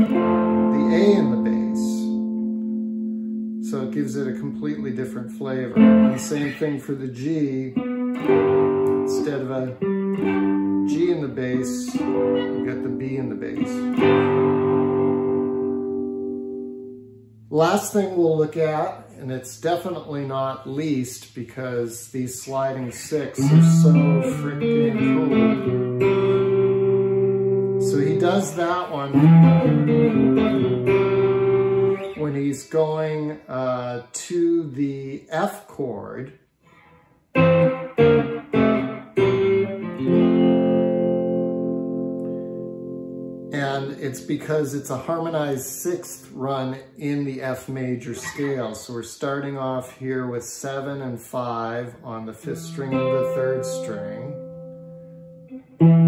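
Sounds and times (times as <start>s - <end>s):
electric guitar chord ringing: 0.0s - 6.8s, 7.8s - 17.5s, 23.4s - 32.4s, 37.4s - 44.2s, 52.5s - 56.0s.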